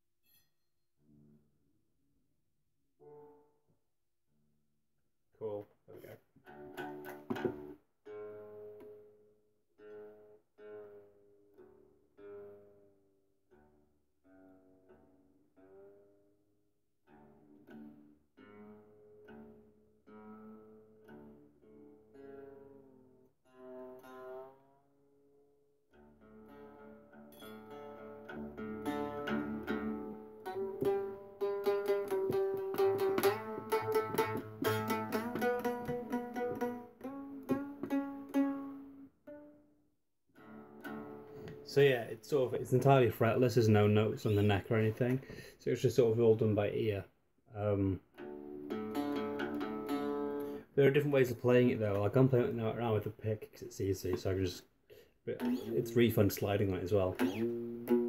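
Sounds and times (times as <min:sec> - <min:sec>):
plucked stringed lute: 0:03.0 - 0:03.6, 0:05.9 - 0:16.4, 0:17.0 - 0:39.7, 0:40.4 - 0:47.0, 0:47.6 - 0:58.0.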